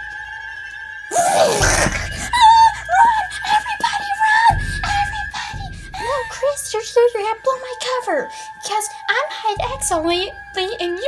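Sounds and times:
person screaming: 1.1 - 3.1
high wavering cries: 1.1 - 6.8.

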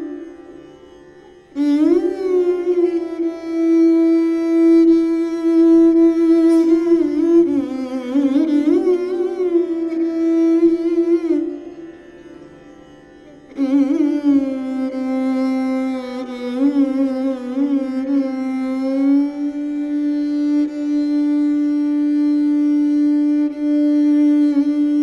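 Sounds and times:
bowed string instrument solo: 0.0 - 25.0.

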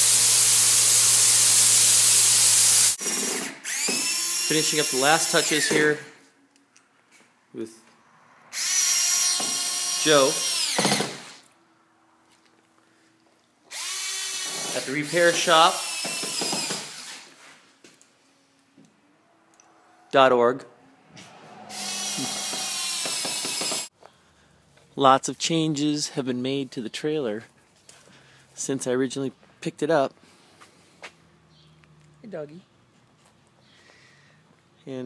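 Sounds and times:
cordless drill running: 0.0 - 6.0, 8.6 - 11.4, 13.7 - 17.3, 21.7 - 23.9.

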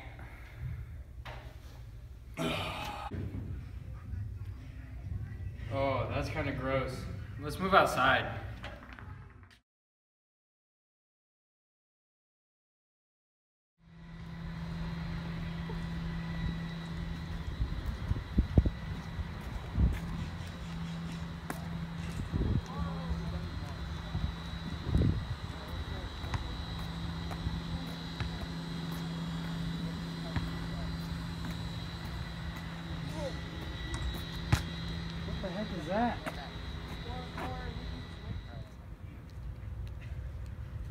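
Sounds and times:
low engine-like drone: 13.8 - 40.9.

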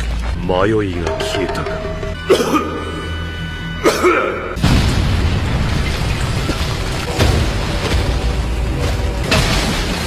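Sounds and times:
background music: 0.0 - 5.4.

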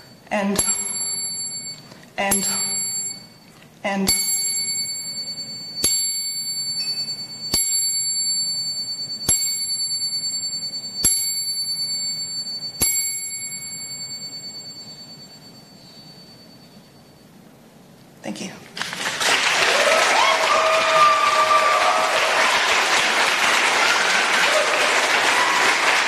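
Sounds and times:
small metal bell struck: 4.1 - 17.2.

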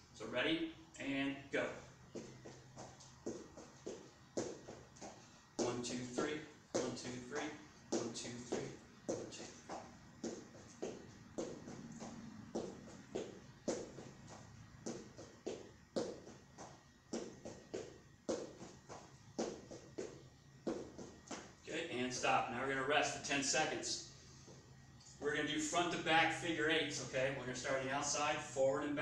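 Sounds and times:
footsteps on foam mat: 2.0 - 21.7.

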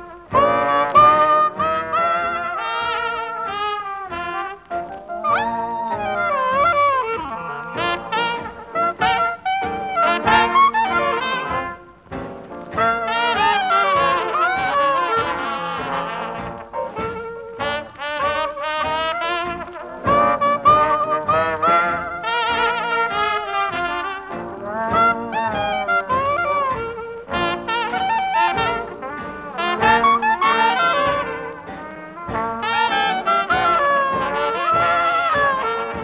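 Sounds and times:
jazz band playing live: 0.0 - 36.0
trombone: 0.0 - 36.0
trumpet: 0.0 - 36.0.

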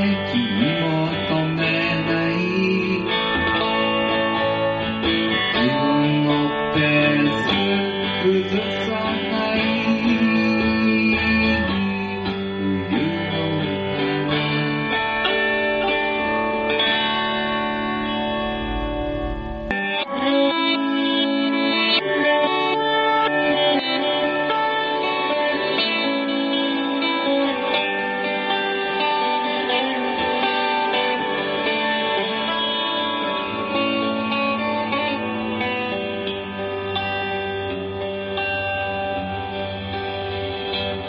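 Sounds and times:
guitar-led band music: 0.0 - 41.0.

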